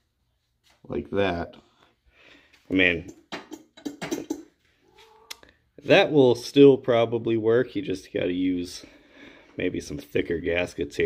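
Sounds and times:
cat meowing faintly: 4.8s - 5.4s.

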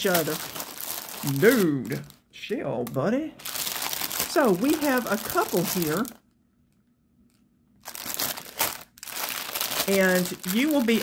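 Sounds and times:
plastic bag crinkling: 0.0s - 2.3s, 3.4s - 6.4s, 7.3s - 11.0s.

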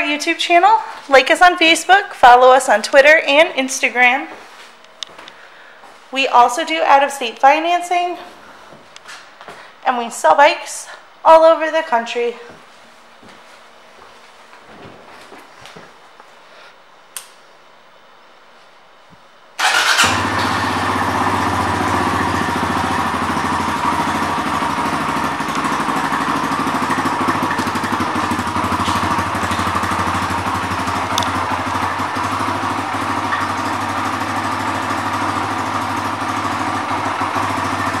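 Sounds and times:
motorcycle engine starting and idling: 19.6s - 38.0s.

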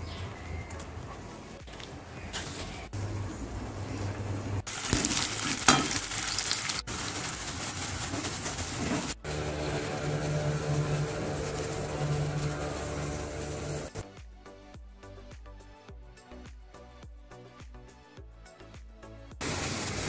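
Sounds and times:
music: 0.0s - 3.0s, 9.2s - 20.0s
food sizzling in hot oil: 4.7s - 14.0s, 19.4s - 20.0s
spatula stirring: 4.7s - 14.0s.

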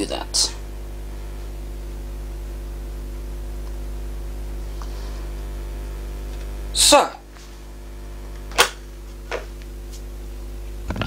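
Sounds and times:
mains hum: 0.0s - 11.0s.

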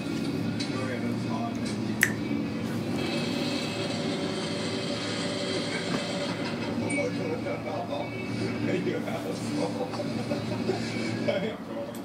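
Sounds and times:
television voices: 0.0s - 12.0s
sharp click: 2.0s - 2.2s.

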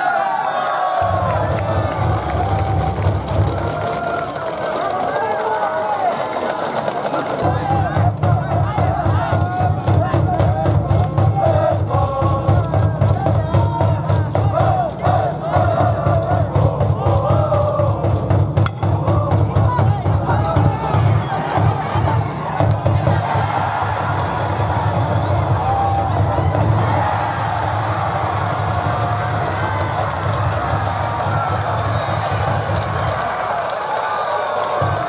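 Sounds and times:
steady drum beat: 1.0s - 4.2s, 7.4s - 33.6s
voices chanting: 7.4s - 31.6s.

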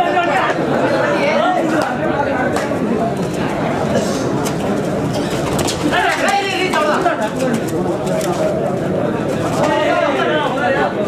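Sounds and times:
spectators chattering and shouting: 0.0s - 11.0s.

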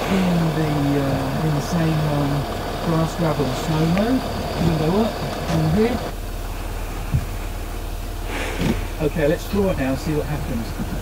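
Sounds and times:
car engine idling: 0.0s - 11.0s
short thump: 8.3s - 9.0s.

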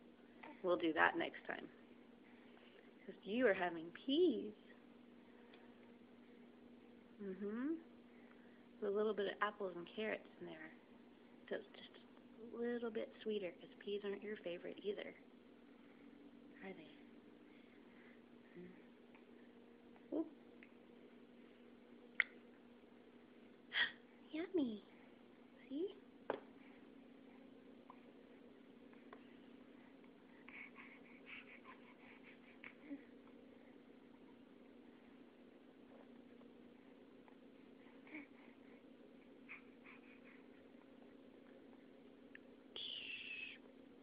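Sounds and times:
faint steady hum: 0.0s - 44.0s.

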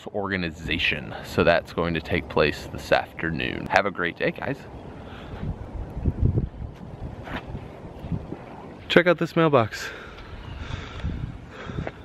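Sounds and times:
wind buffeting microphone: 4.4s - 12.0s.

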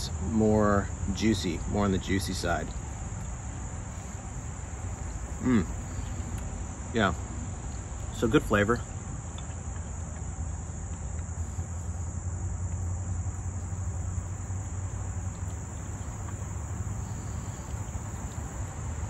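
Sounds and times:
crickets chirping: 0.0s - 19.0s.

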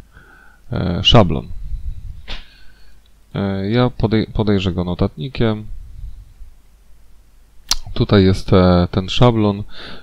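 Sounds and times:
faint low room hum: 0.0s - 10.0s
sharp click: 7.7s - 7.9s.

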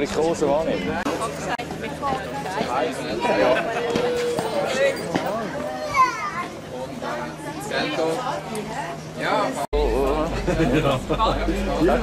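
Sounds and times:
people chatting: 0.0s - 12.0s
child's high-pitched voice: 5.7s - 6.6s.

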